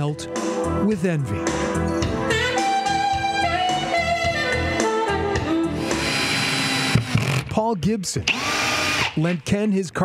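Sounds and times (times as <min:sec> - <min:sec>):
background music: 0:00.0 - 0:10.0
power drill driving screws: 0:05.8 - 0:07.5, 0:08.3 - 0:09.3.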